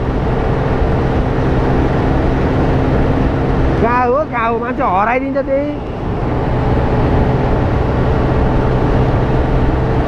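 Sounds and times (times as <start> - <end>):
motorbike engine droning: 0.0 - 10.0
wind rushing over microphone: 0.0 - 10.0.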